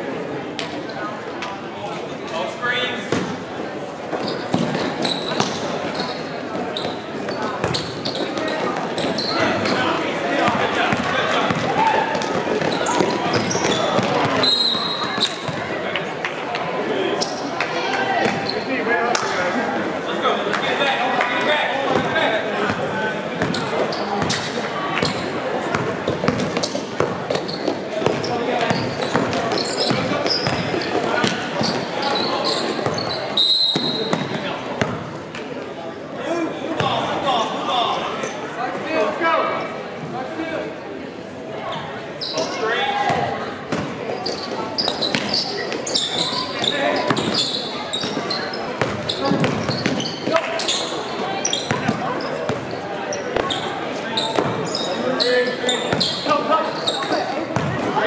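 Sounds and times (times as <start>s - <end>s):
players' feet on court: 4.1s - 16.6s
basketball bouncing on court: 7.6s - 9.8s, 10.4s - 14.4s, 23.4s - 31.9s, 46.2s - 50.3s, 51.7s - 52.6s, 57.6s - 57.9s.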